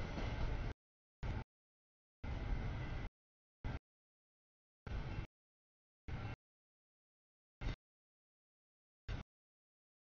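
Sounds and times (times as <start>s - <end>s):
freight train rumbling: 0.0s - 1.4s.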